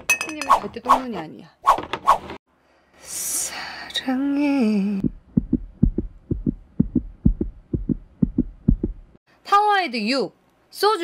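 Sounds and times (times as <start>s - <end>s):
fast heartbeat thumps: 5.0s - 9.2s.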